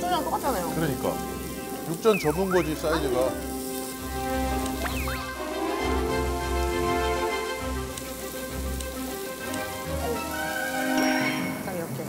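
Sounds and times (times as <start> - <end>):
background music with held notes: 0.0 - 12.0
beef sizzling on a grill: 0.0 - 12.0.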